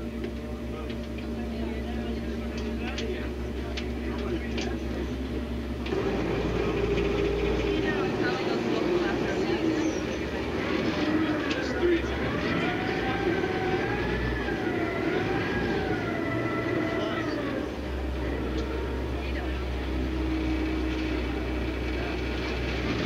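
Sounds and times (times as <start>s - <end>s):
people talking: 0.0s - 23.0s
vehicle engine rumble: 0.0s - 23.0s.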